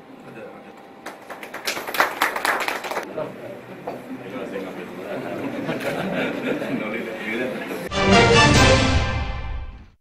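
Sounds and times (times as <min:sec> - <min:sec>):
people clapping: 0:01.0 - 0:03.1.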